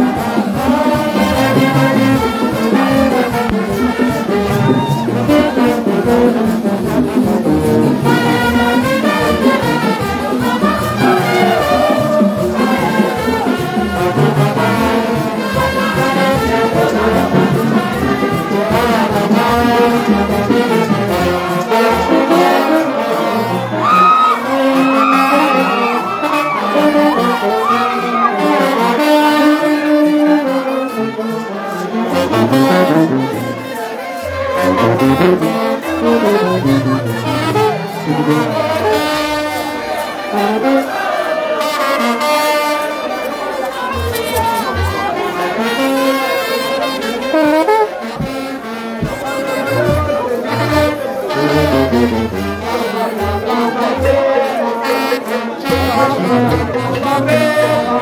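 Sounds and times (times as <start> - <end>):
crowd voices: 0.0 - 58.0
trombones and sousaphones playing: 0.0 - 58.0
drums: 48.1 - 51.0.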